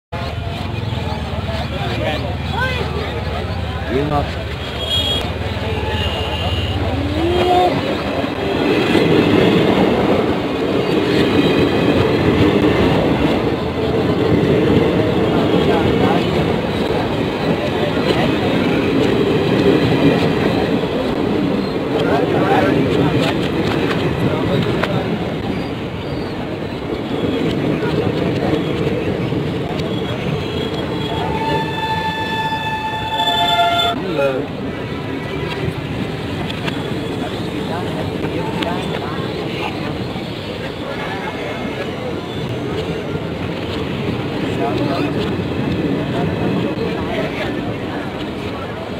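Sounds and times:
train wheels rumbling on track: 0.1s - 48.9s
train horn: 4.7s - 7.8s, 30.5s - 34.0s.

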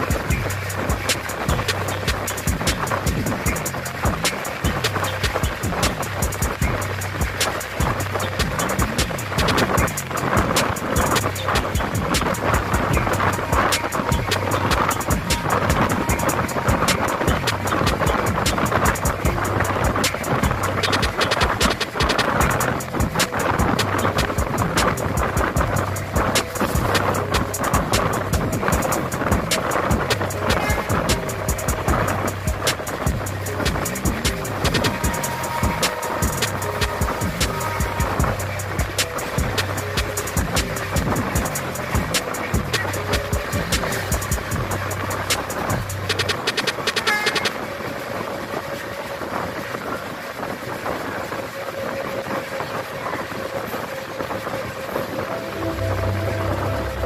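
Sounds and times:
background music with beat and bass: 0.0s - 57.0s
moving passenger train: 0.0s - 57.0s.

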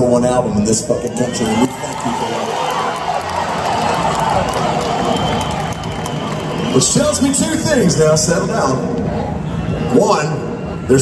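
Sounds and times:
concert crowd cheering: 0.6s - 11.0s.

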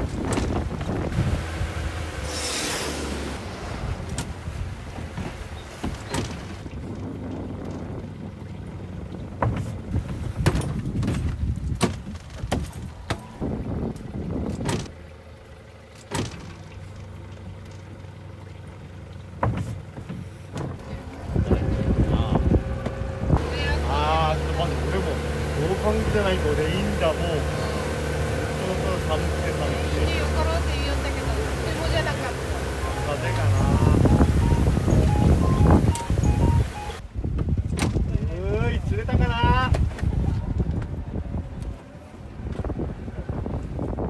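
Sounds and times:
boat engine idling: 3.1s - 11.7s, 12.4s - 37.0s.

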